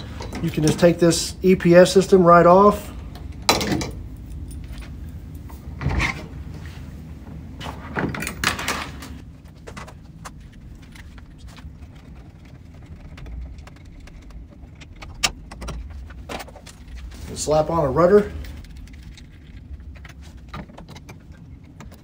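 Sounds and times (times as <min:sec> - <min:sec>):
knocks and rattles of hardware: 0:03.1 - 0:05.0, 0:07.8 - 0:10.5, 0:13.1 - 0:17.0.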